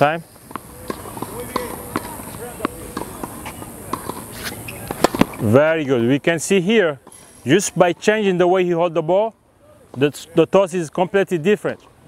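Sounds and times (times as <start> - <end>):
distant voices: 0.0 - 11.9
tennis racket hitting ball: 0.4 - 5.5.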